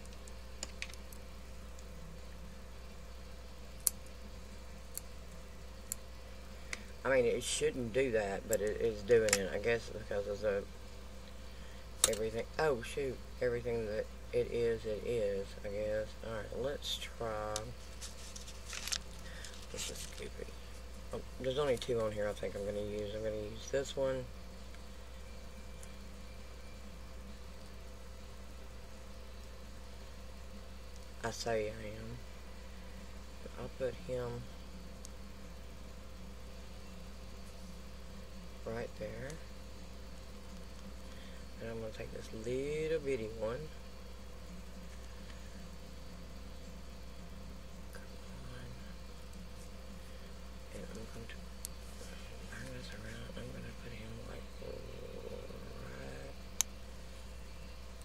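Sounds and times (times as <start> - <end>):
electrical hum: 0.0 - 58.0.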